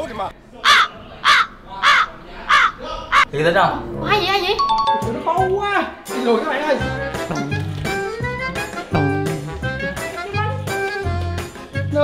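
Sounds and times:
harsh caws: 0.6 - 3.3.

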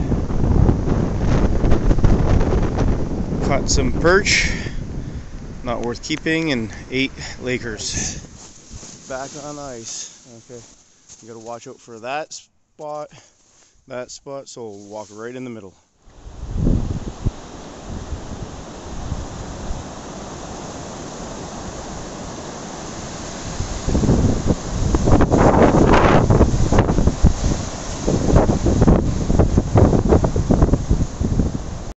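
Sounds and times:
wind buffeting microphone: 0.0 - 9.8, 16.1 - 31.9
wind blowing through trees: 0.0 - 31.9.

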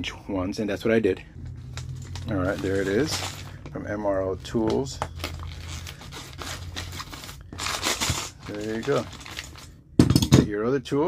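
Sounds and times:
cloth bag rustling: 1.4 - 9.7.

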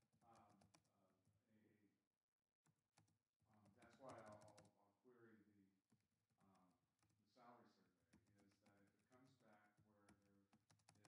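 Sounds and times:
faint keyboard typing: 0.0 - 1.1, 2.7 - 11.0
faint indistinct speech: 0.2 - 1.9, 3.5 - 5.7, 6.4 - 11.0.

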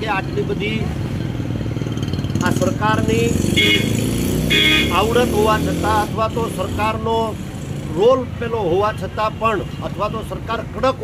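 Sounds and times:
man talking: 0.0 - 1.0, 2.4 - 3.4, 4.8 - 11.0.

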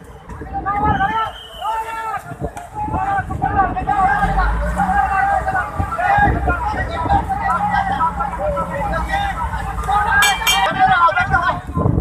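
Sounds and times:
boat engine rumble: 0.0 - 12.0
people shouting and calling out: 0.0 - 12.0.

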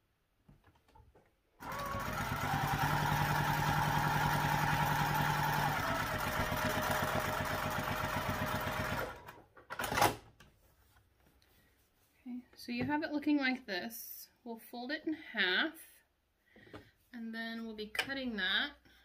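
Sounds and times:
sewing machine stitching: 1.6 - 10.2.

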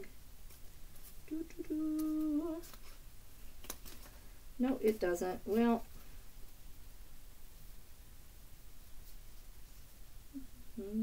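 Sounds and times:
woman humming: 1.3 - 2.8, 10.3 - 11.0.

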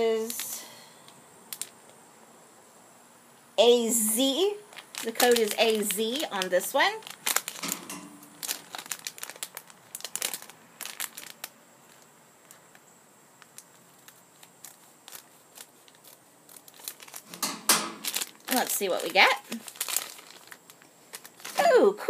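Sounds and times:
foil bag crinkling: 4.2 - 12.8, 13.4 - 22.0.

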